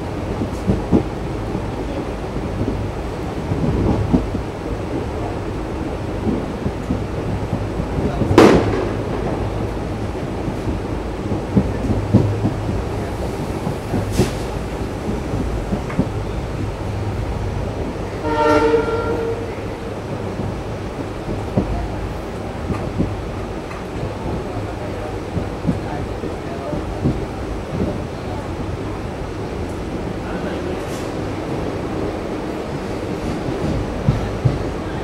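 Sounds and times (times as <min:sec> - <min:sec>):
train rumbling along track: 0:00.0 - 0:35.0
locomotive horn blast: 0:18.2 - 0:19.8.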